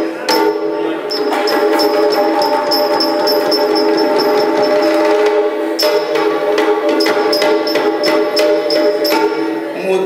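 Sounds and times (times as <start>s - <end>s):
hand cymbals ringing: 0.0s - 9.8s
drum strokes: 0.2s - 9.8s.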